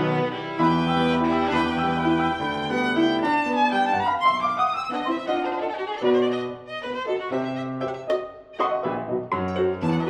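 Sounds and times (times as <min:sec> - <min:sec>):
violin and piano playing: 0:00.0 - 0:10.0.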